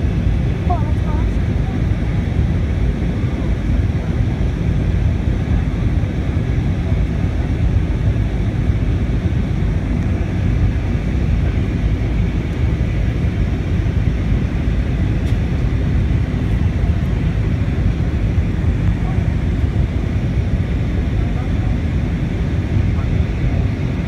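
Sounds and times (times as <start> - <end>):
airliner cabin engine roar: 0.0 - 24.0.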